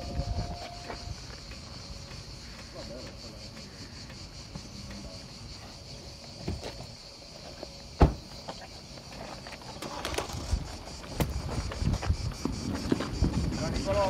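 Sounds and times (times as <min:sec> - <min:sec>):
footsteps and shuffling: 0:00.0 - 0:02.3
car door shutting: 0:08.0 - 0:08.6.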